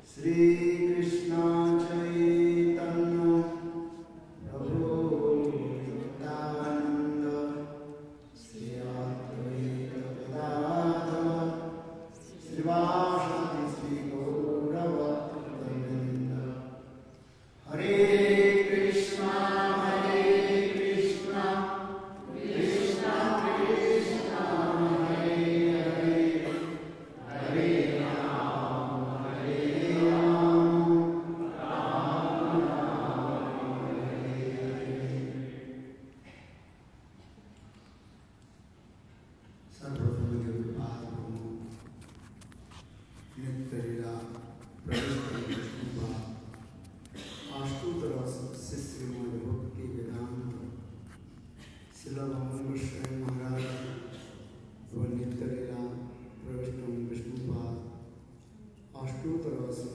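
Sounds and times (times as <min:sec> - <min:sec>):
man chanting prayers: 0:00.0 - 0:17.0, 0:17.6 - 0:21.8, 0:22.4 - 0:31.7, 0:39.7 - 0:46.7, 0:47.4 - 0:51.2, 0:51.9 - 0:58.2, 0:58.9 - 0:59.9.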